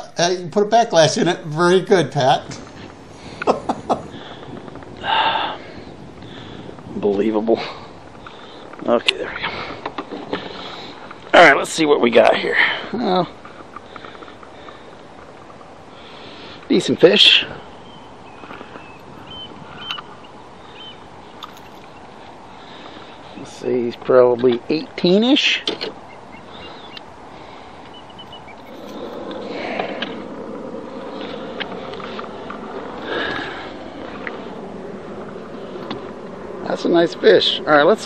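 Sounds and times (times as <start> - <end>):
wind noise on microphone: 1.0 - 11.4, 12.9 - 24.7, 25.6 - 38.0
person exhaling: 4.1 - 6.7, 28.8 - 30.2, 33.0 - 33.9.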